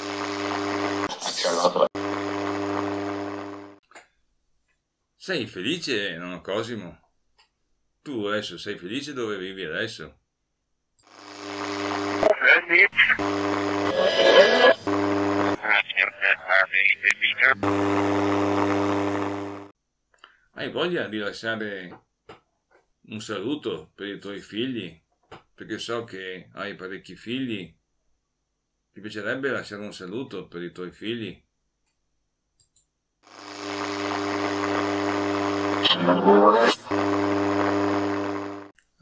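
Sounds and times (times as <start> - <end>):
radio receiver buzzing hiss: 0.0 - 3.8, 11.1 - 19.7, 33.3 - 38.7.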